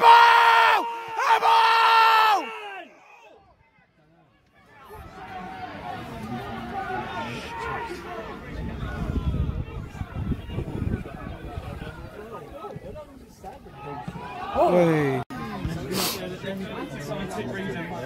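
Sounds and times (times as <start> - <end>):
murmur of spectators' voices: 0.0 - 18.0.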